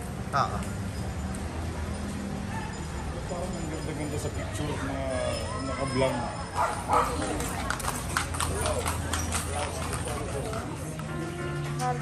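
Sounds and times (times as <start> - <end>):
people's voices: 0.2 - 12.0
horse hooves on stone paving: 6.6 - 12.0.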